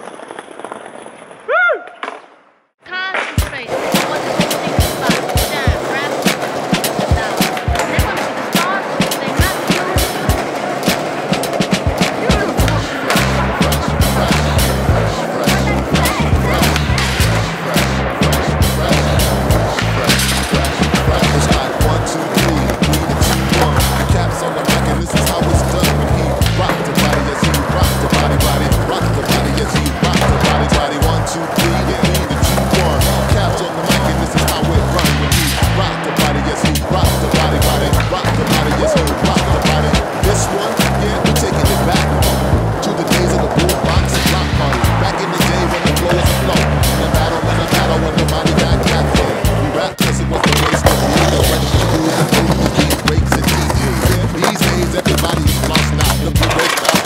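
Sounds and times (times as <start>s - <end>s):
skateboard wheels rolling on concrete: 0.0s - 57.0s
music with heavy beat: 3.3s - 57.0s.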